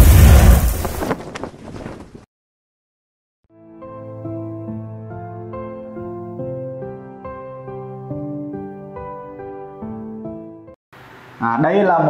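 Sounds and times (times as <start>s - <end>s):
whoosh with deep rumbling boom: 0.0s - 1.0s.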